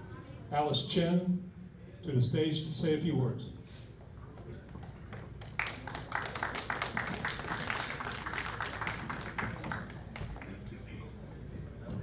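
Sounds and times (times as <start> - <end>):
audience applauding: 5.4 - 10.6.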